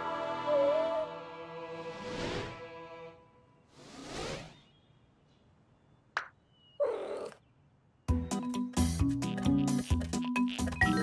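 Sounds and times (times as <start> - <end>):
falling zip sound effect: 3.8 - 4.7.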